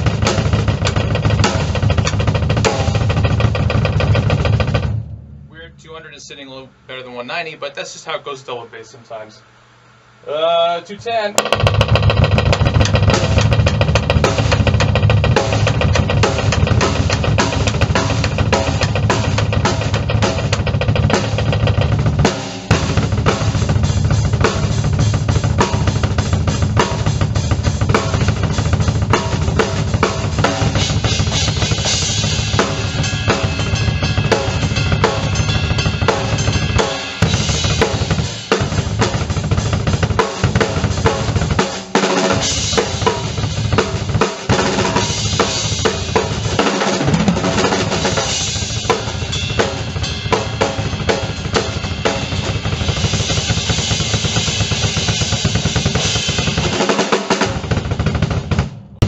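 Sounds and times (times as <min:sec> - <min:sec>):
fast double bass drum strokes: 0:00.0 - 0:06.6, 0:11.4 - 0:59.0
drum kit playing: 0:00.0 - 0:08.5, 0:11.0 - 0:59.0.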